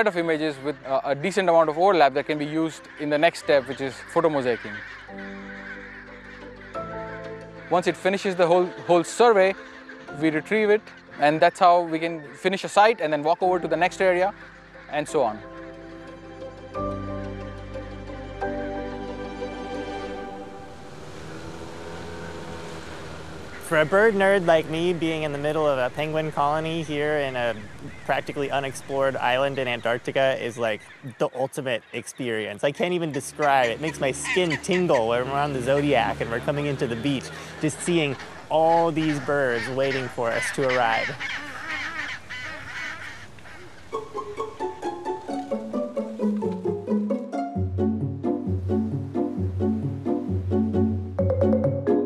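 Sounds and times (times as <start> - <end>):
penguins calling harshly: 0.7 - 12.7, 19.9 - 31.3, 32.9 - 45.3
plucked string music: 18.4 - 30.6, 43.9 - 52.0
outboard motor running: 20.2 - 30.6, 33.3 - 40.3.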